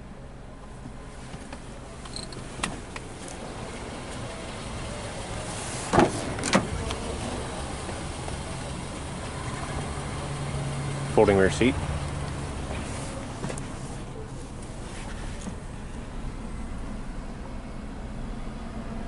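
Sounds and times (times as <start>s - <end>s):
car door latch clicks: 5.9s - 7.0s.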